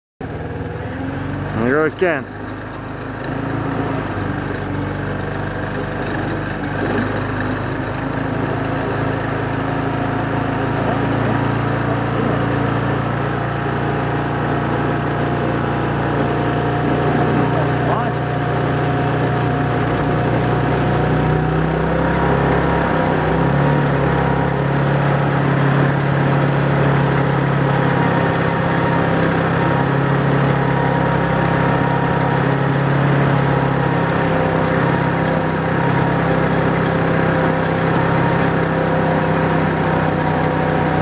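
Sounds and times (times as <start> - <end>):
winch engine running: 0.2 - 41.0.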